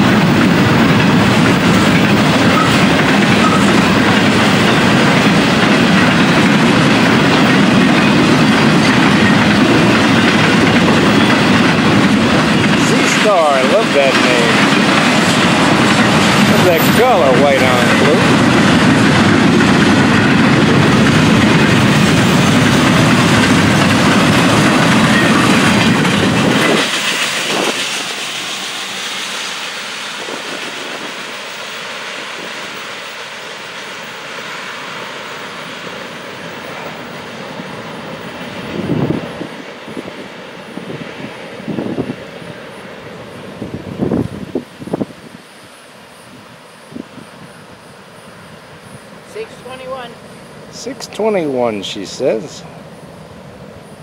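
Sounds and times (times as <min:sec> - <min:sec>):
freight train rumbling past: 0:00.0 - 0:54.0.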